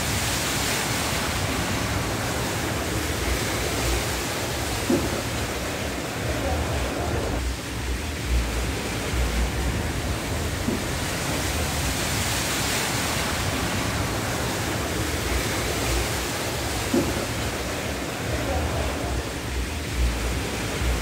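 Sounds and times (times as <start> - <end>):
floodwater rushing: 0.0 - 21.0
low rumbles: 1.2 - 21.0.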